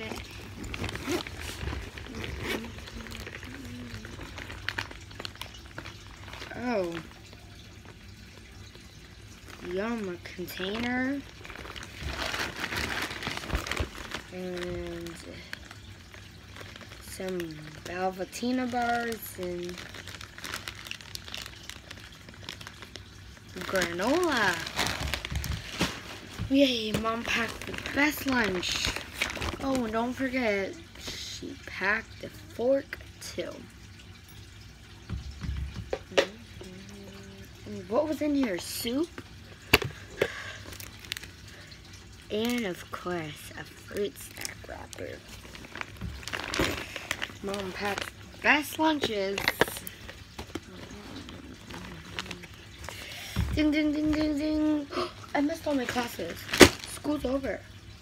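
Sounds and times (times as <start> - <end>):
plastic packaging crinkling: 0.0 - 31.2, 38.4 - 58.0.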